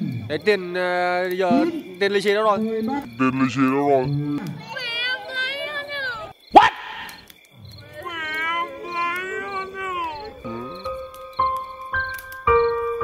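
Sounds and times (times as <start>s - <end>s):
high wavering crying wail: 4.3s - 6.9s, 7.8s - 10.8s
slow piano music: 9.9s - 13.0s.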